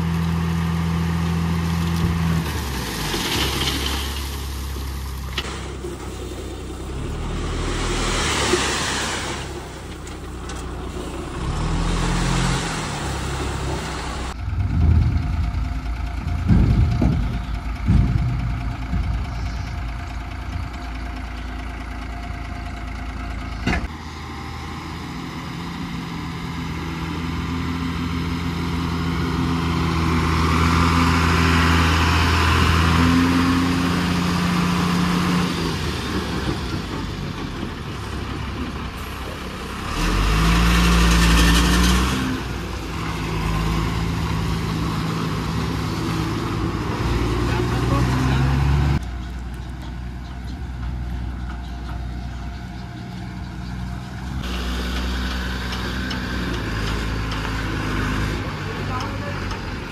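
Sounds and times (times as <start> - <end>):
dump truck diesel engine: 0.0 - 59.9.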